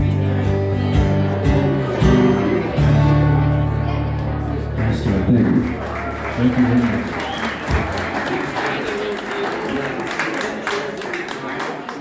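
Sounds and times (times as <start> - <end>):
audience applauding: 4.2 - 12.0.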